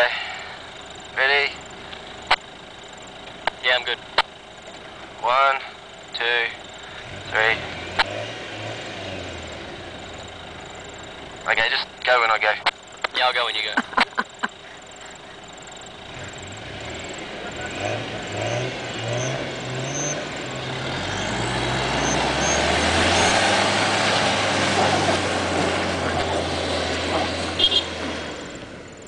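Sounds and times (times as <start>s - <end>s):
engines revving under load: 0.0s - 29.0s.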